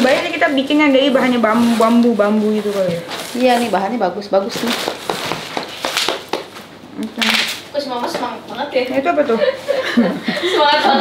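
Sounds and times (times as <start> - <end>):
packaging crinkling and rustling: 0.0 - 7.7.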